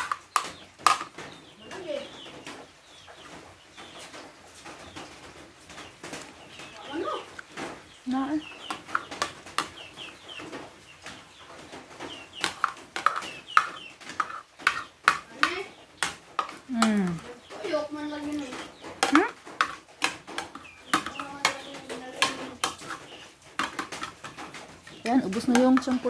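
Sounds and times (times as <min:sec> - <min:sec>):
chickens clucking: 0:00.0 - 0:26.0.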